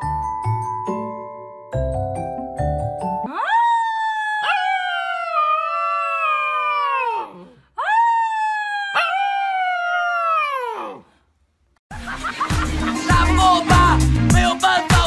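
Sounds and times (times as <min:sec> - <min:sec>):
puppy howling: 0:03.3 - 0:11.0.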